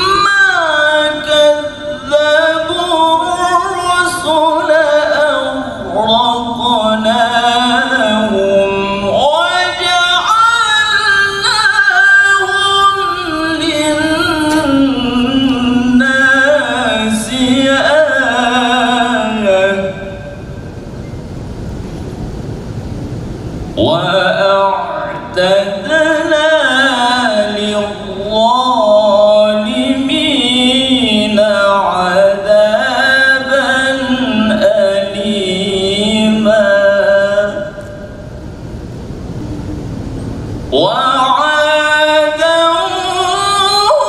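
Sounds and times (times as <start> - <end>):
faint steady hum: 0.0 - 44.0
low rumble of large hall: 0.0 - 44.0
low uneven microphone rumble: 34.0 - 43.7.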